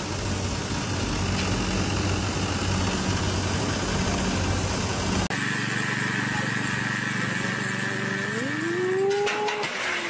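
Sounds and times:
engine running: 0.0s - 10.0s.

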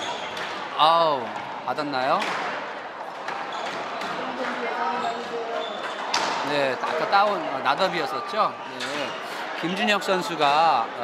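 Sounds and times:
squash ball hitting court walls: 1.3s - 7.4s.

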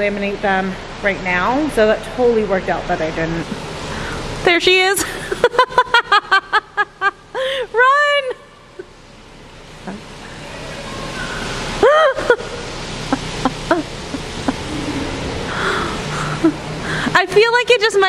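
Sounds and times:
heavy rain pouring: 0.0s - 18.0s.

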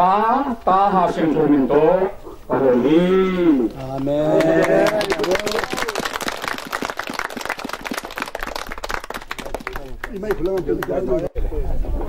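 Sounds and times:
crowd clapping: 3.8s - 11.3s.

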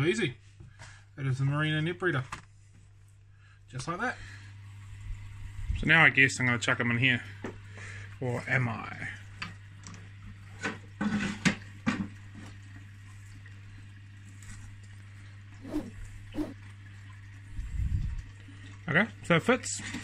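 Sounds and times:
steady low hum: 15.2s - 16.6s.

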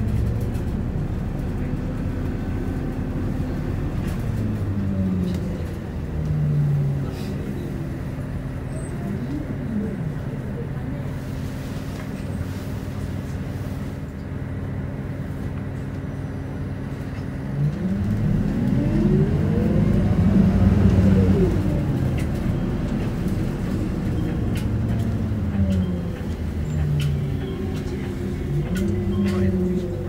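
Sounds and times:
bus diesel engine: 0.0s - 30.0s.

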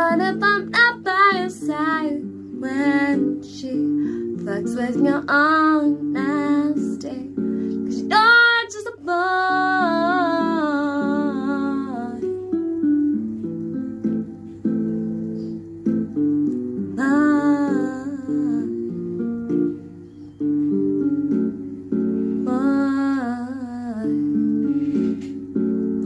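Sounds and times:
woman singing with vibrato: 0.0s - 12.3s, 17.0s - 19.0s, 22.4s - 24.9s.

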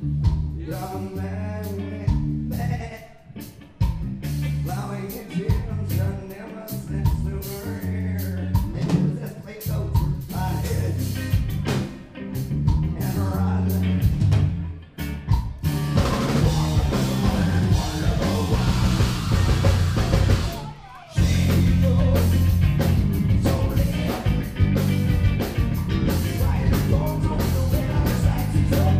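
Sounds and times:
live metal band playing: 0.0s - 28.9s.

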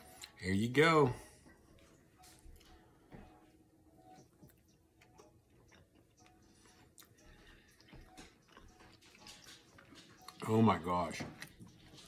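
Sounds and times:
person chewing: 4.1s - 10.4s.

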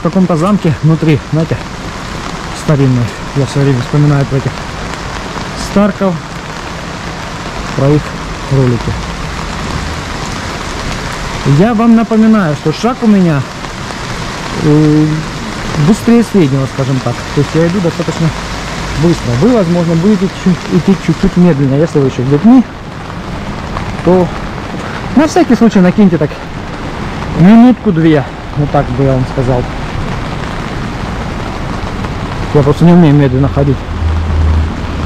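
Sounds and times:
rain on an umbrella: 0.0s - 35.0s
river rushing: 0.0s - 35.0s
man saying uh: 7.8s - 9.0s, 14.6s - 18.4s, 19.0s - 22.7s, 32.5s - 33.8s.

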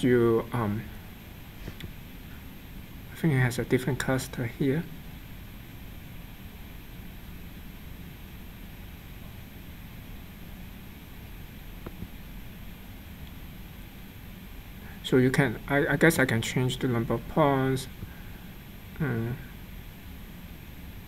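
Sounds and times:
microphone hiss: 0.0s - 21.0s.

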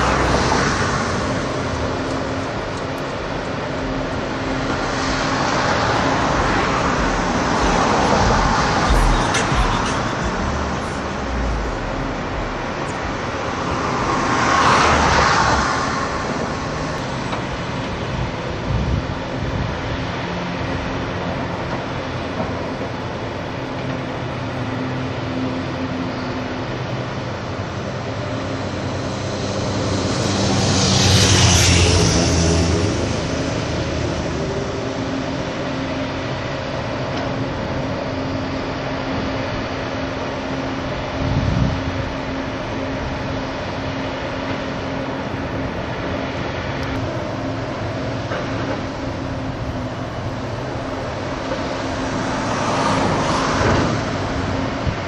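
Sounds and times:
traffic rumble: 0.0s - 55.0s
vehicles passing close by: 0.0s - 55.0s.

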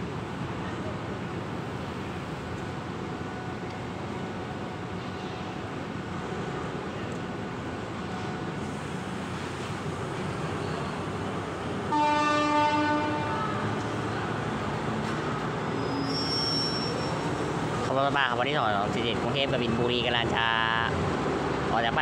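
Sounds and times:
train rumbling: 0.0s - 22.0s
train horn blast: 11.9s - 13.7s.

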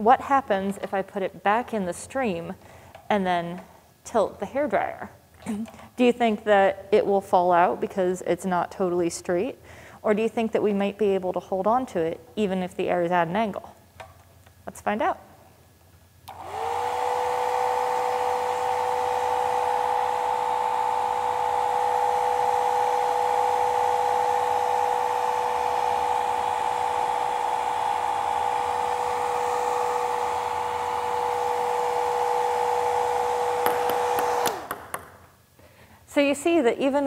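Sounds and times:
hair dryer switch clicks: 16.3s - 16.6s
hair dryer blowing whine: 16.3s - 34.9s.

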